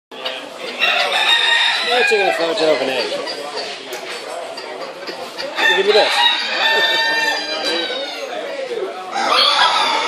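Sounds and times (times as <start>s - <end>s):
clamour of poultry hall: 0.1s - 10.0s
cockerel crowing: 0.7s - 2.8s, 5.4s - 8.5s, 9.1s - 10.0s.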